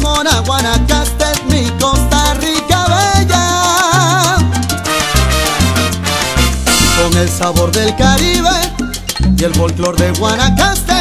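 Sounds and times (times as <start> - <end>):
bass line: 0.0 - 11.0
percussion strikes: 0.0 - 11.0
salsa band music: 0.0 - 11.0.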